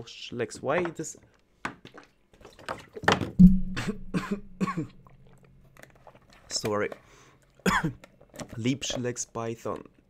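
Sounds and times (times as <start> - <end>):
man coughing: 3.8 - 5.0, 7.7 - 8.0.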